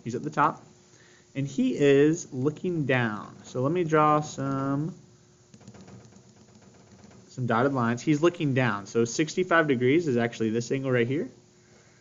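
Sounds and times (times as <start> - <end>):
pen ticking on paper: 5.5 - 7.3.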